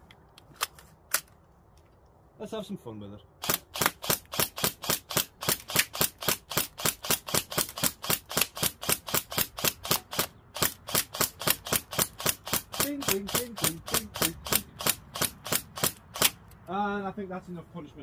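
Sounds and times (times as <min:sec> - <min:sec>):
airsoft rifle rapid shots: 0:03.4 - 0:16.4.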